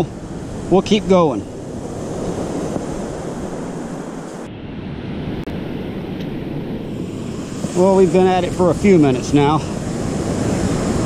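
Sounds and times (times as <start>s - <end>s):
ocean surf breaking: 0.0s - 11.0s
wind noise on microphone: 0.0s - 11.0s.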